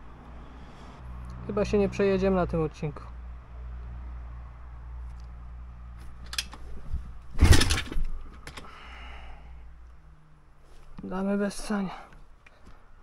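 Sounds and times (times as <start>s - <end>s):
engine backfire bang: 7.4s - 8.1s.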